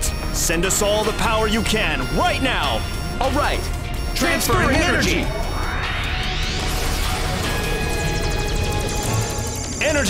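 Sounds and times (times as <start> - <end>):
dramatic cartoon music: 0.0 - 10.0.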